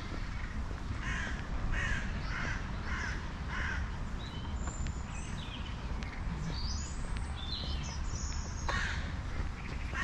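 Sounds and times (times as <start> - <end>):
crow-like bird calls: 0.0 - 4.0, 8.5 - 10.0.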